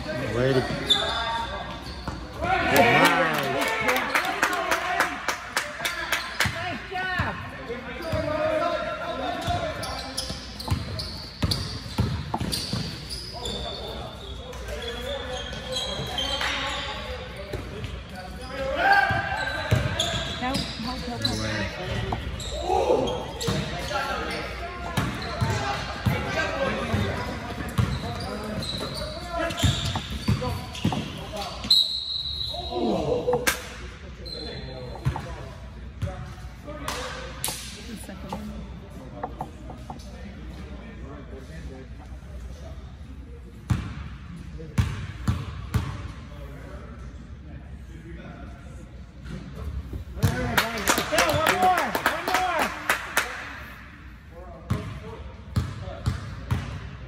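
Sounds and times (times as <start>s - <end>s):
players' voices: 0.0s - 56.9s.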